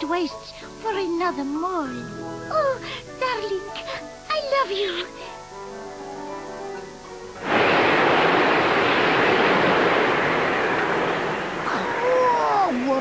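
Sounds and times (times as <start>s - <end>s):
soft music: 0.0s - 7.5s.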